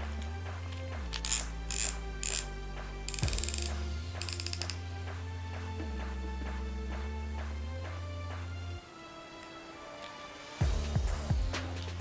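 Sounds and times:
background music: 0:00.0 - 0:12.0
fishing reel clicking: 0:01.1 - 0:04.9.

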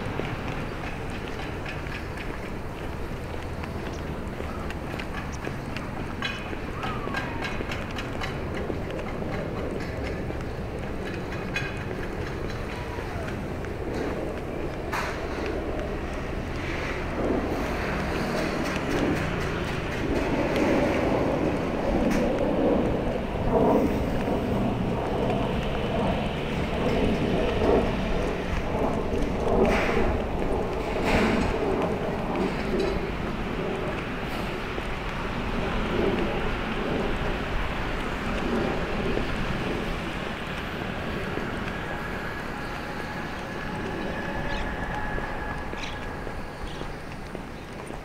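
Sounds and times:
road traffic rumble: 0:00.0 - 0:48.0
wind buffeting microphone: 0:00.0 - 0:48.0.

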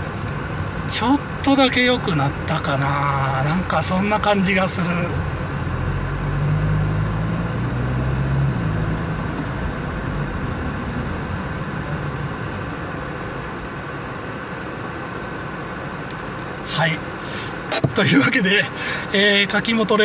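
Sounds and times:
road rumble: 0:00.0 - 0:20.0
low exhaust drone: 0:04.8 - 0:19.1.

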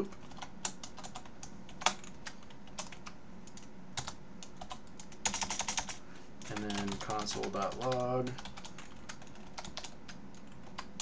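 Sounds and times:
computer keyboard typing: 0:00.0 - 0:11.0.

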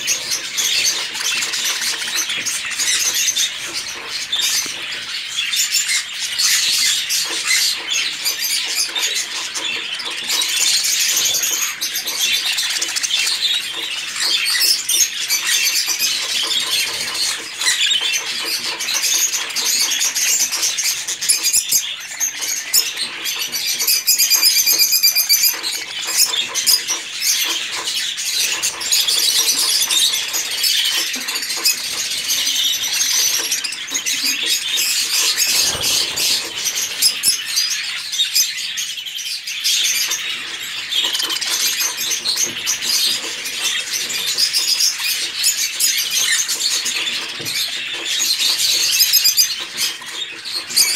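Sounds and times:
budgerigars chattering: 0:00.0 - 0:50.9
wings flapping: 0:27.7 - 0:37.4.

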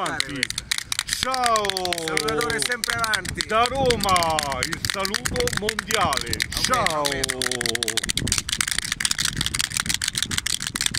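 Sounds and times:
plastic hand clapper toys clacking: 0:00.0 - 0:10.9.

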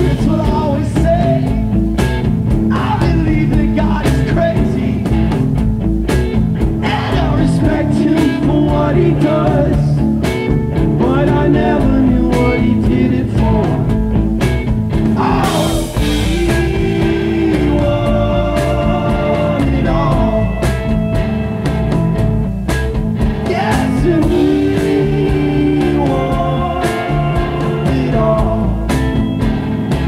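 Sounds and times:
live rock band playing: 0:00.0 - 0:30.0
person singing: 0:06.8 - 0:10.0, 0:11.0 - 0:14.0, 0:15.2 - 0:21.1, 0:23.4 - 0:29.2.

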